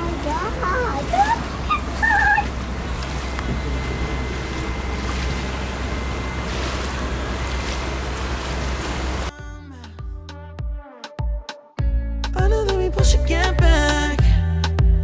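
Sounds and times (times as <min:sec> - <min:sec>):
boat engine drone: 0:00.0 - 0:09.3
water rushing: 0:00.0 - 0:09.3
wind: 0:00.0 - 0:09.3.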